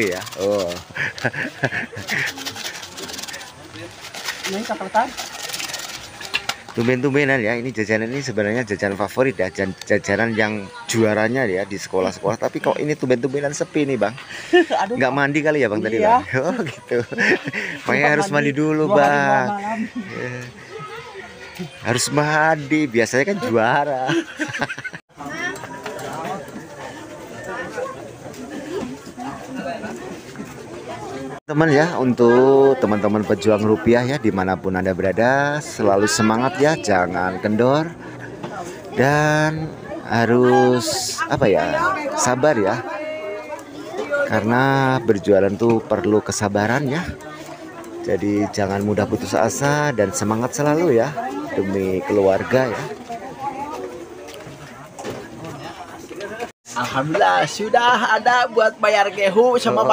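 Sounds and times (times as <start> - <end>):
plastic shaker cup rattling: 0.0 - 6.9
children chattering: 0.0 - 59.9.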